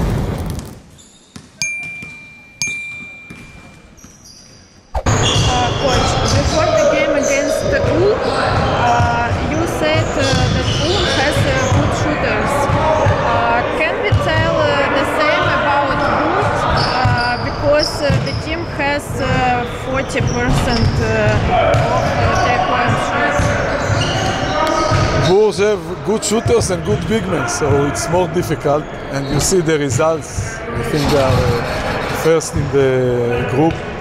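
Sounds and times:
basketballs dribbling on court: 0.0 - 4.6, 16.5 - 25.3
basketballs bouncing on wooden floor: 3.0 - 4.6.

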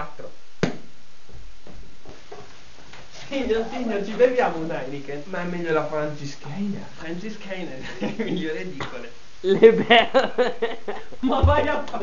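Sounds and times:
room noise: 0.0 - 12.0
soft footsteps thudding: 0.6 - 4.6.

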